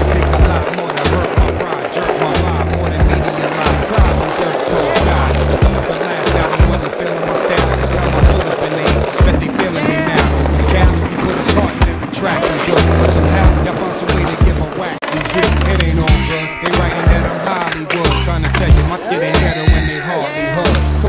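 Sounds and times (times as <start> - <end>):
hip-hop beat with heavy bass: 0.0 - 21.0
skateboard clacking: 0.0 - 21.0
skateboard wheels rolling: 0.0 - 21.0.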